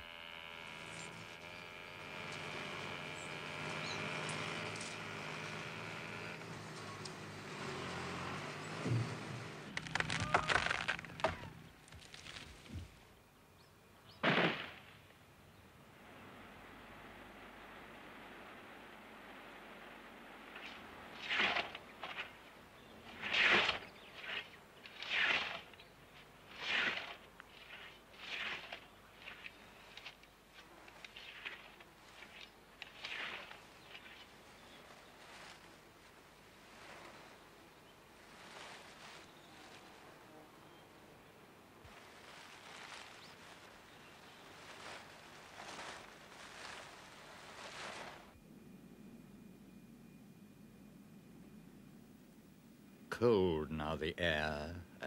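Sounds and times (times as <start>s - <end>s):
scythe swishing through bracken: 20.7s - 22.4s, 23.1s - 25.7s, 26.5s - 30.2s, 30.9s - 34.7s.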